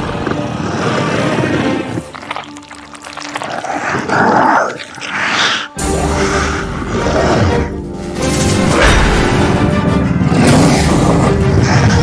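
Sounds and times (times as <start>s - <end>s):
dark horror score low drone: 0.0s - 12.0s.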